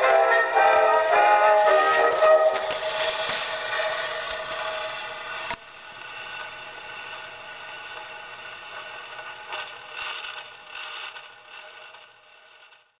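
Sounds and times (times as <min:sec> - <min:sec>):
record surface hiss and scratch: 0:00.0 - 0:13.0.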